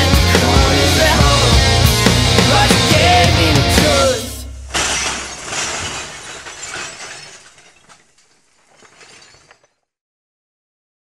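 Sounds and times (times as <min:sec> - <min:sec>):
sudden crash: 0:04.4 - 0:08.0.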